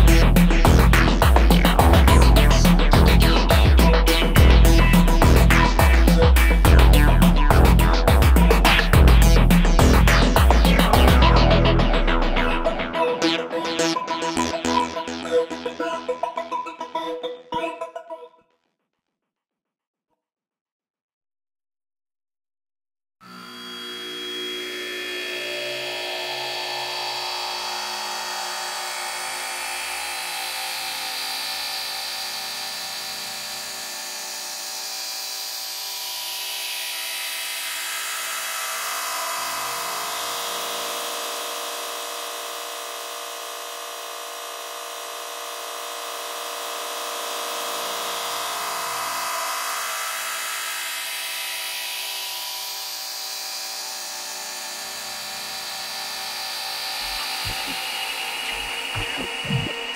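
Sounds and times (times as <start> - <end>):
buzzing synth drone: 0.0 - 16.5, 23.2 - 59.9
low electronic pulses: 56.9 - 59.9.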